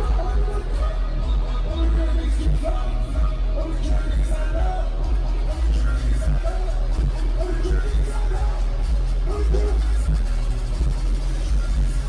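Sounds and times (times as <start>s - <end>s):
concert bass rumble: 0.0s - 12.0s
crowd noise: 0.0s - 12.0s.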